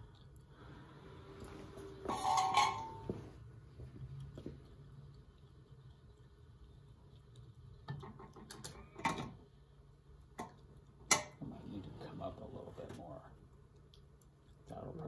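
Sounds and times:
metallic clatter: 2.1s - 3.1s.

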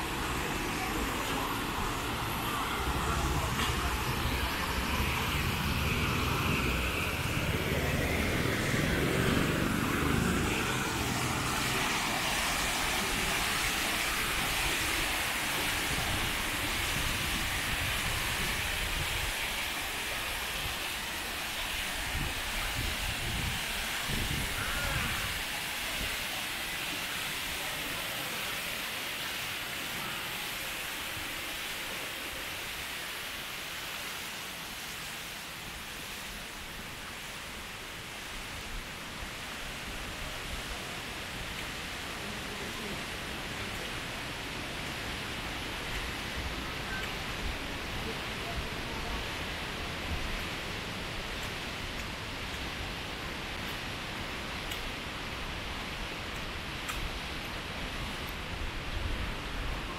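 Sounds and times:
fountain water rushing: 0.0s - 59.9s
water cascading down stone steps: 0.0s - 59.9s.

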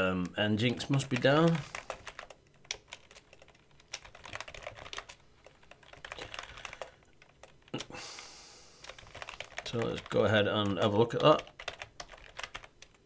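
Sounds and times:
typing on a keyboard: 0.6s - 7.9s, 8.8s - 13.0s.

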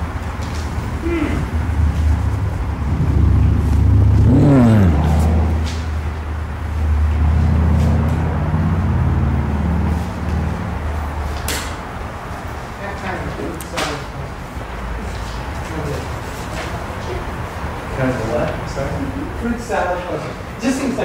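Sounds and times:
vehicle engine rumbling: 0.0s - 12.8s.

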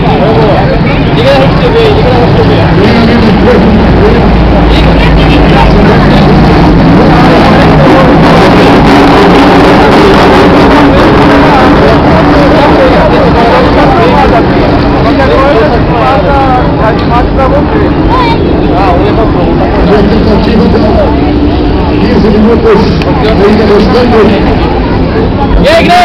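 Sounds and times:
vehicle engine idling: 0.0s - 25.6s
people talking indistinctly: 0.0s - 26.0s.

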